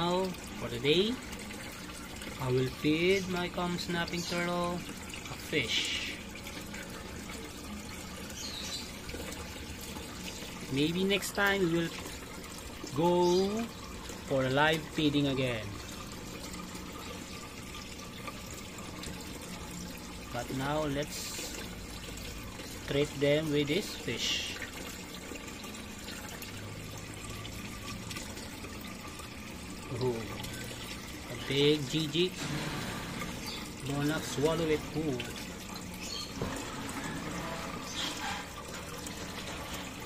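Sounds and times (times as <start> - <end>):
water trickling: 0.0 - 40.0.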